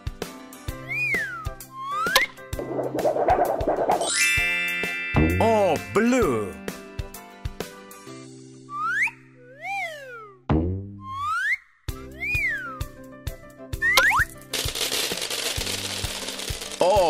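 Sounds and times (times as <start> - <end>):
children's background music: 3.1 - 9.1
cartoon whistle glides: 8.7 - 10.4, 11.0 - 12.8.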